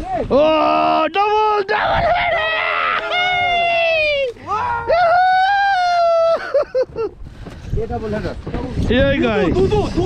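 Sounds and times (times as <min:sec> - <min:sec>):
men shouting excitedly: 0:00.0 - 0:06.4.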